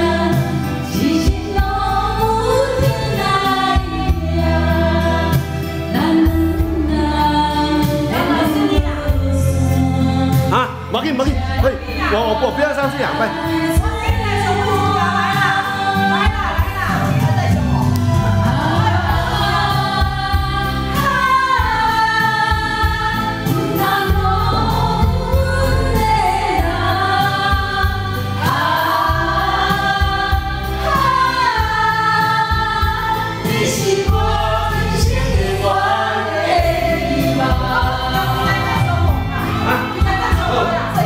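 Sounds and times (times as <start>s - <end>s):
group singing karaoke: 0.0s - 41.0s
karaoke backing track: 0.0s - 41.0s.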